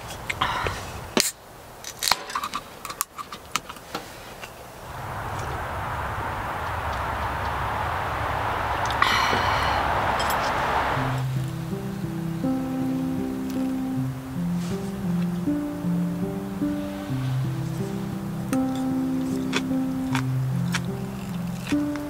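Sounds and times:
steady hiss: 0:03.8 - 0:22.0.

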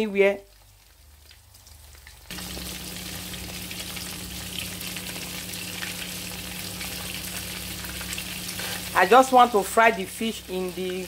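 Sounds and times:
fish sizzling in hot oil: 0:00.0 - 0:11.0
low steady hum: 0:02.3 - 0:11.0.

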